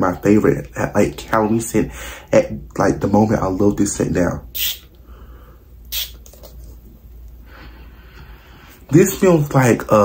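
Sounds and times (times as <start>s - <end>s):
faint low room hum: 0.0s - 10.0s
spray bottle hiss: 4.6s - 4.9s, 5.9s - 6.3s.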